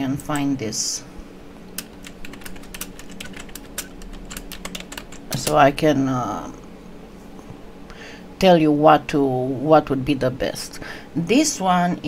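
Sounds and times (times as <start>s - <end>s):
computer keyboard typing: 1.8s - 5.7s.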